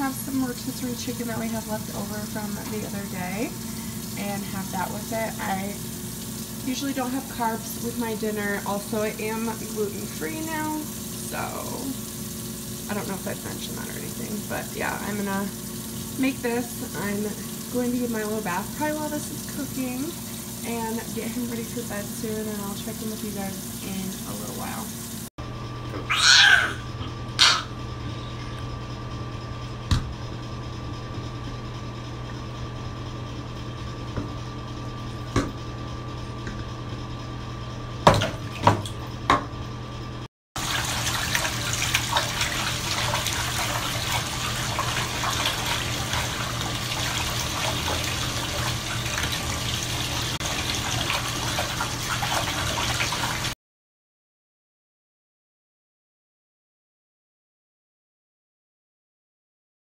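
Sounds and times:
faucet running into tub: 0.0s - 25.3s, 40.6s - 53.6s
splashes in bathwater: 40.6s - 53.6s.

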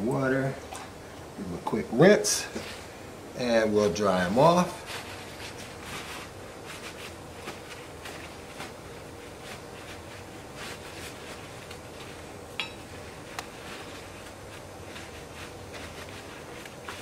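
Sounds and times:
cloth rustling and rubbing: 3.8s - 17.0s.

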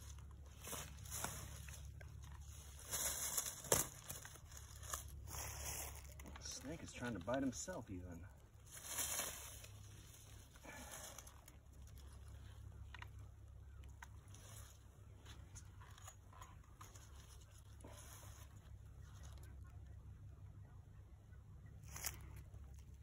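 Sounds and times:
dry leaves rustling and crunching: 0.0s - 19.6s, 21.8s - 23.0s
low steady rumble: 0.0s - 23.0s.

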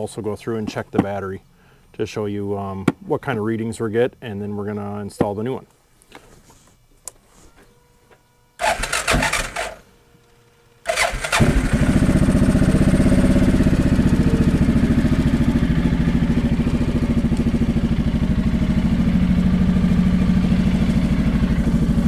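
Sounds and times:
engine starting and idling: 8.6s - 9.8s, 10.9s - 22.0s.

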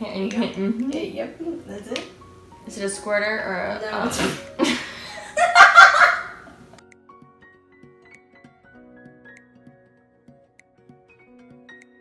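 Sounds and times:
soft background music: 0.0s - 12.0s
woman laughing: 4.2s - 6.5s.

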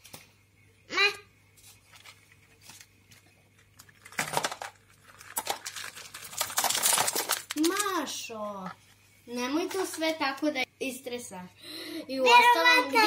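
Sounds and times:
snack wrapper crinkling: 1.8s - 8.0s
plastic toys clattering: 3.6s - 8.2s.

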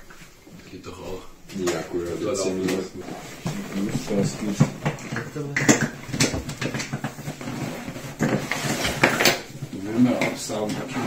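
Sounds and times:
plastic and fabric rustling: 0.0s - 11.0s.

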